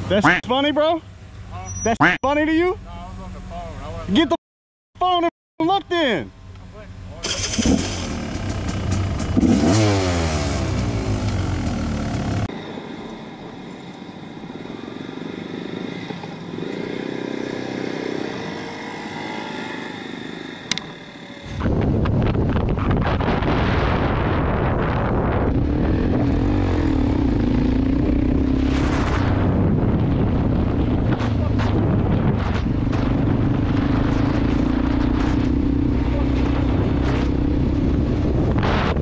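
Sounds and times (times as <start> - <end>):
road noise: 0.0 - 4.4, 5.2 - 39.0
motorcycle engine revving: 7.2 - 12.6, 14.4 - 39.0
sharp click: 20.7 - 20.9.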